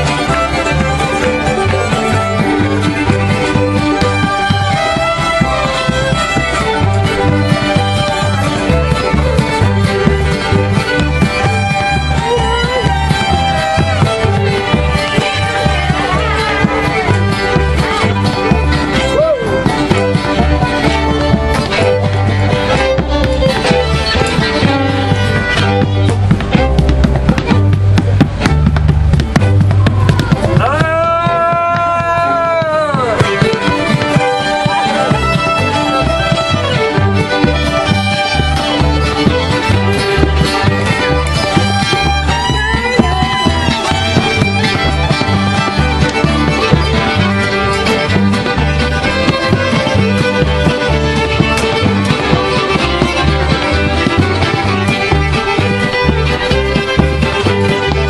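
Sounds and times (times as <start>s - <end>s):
boots tapping on plywood board: 0.0s - 58.0s
fiddle and banjo string band music: 0.0s - 58.0s
low bass line: 0.0s - 58.0s
strummed guitar: 0.0s - 58.0s.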